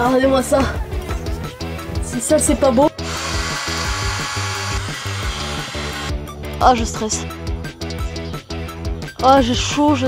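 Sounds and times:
background music: 0.0s - 10.0s
cordless drill running: 3.0s - 6.2s.

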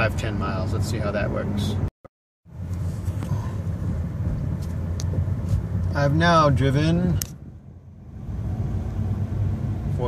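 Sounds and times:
road and tyre rumble: 0.0s - 10.0s.

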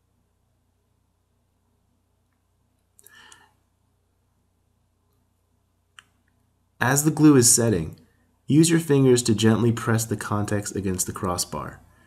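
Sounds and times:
man speaking: 6.8s - 11.9s.

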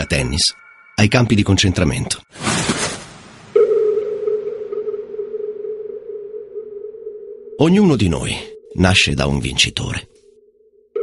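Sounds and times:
sustained synth tone: 3.6s - 7.6s.

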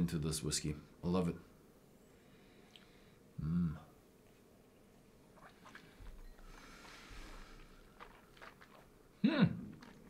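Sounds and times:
soft noisy breath: 2.0s - 3.4s, 5.4s - 8.0s
sipping and mouth smacks: 5.3s - 6.4s, 7.4s - 10.0s.

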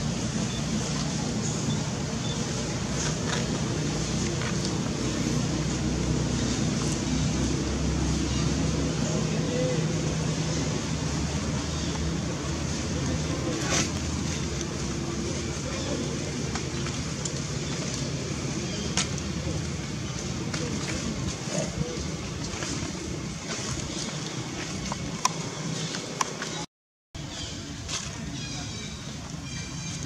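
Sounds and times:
steady low hum: 0.0s - 26.7s.

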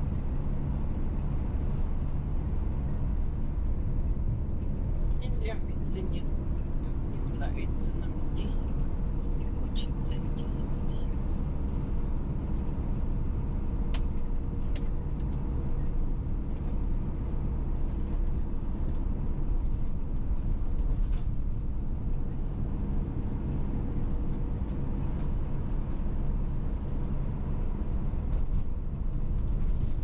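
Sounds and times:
car engine and tyres rumbling: 0.0s - 30.0s
faint constant hum: 0.0s - 30.0s.

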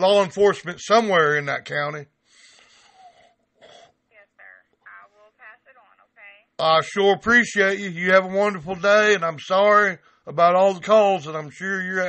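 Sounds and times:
faint voice over phone: 4.2s - 6.5s.

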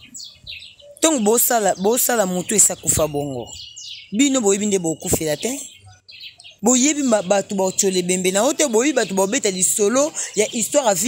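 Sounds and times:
faint bird chirps: 0.0s - 11.0s.

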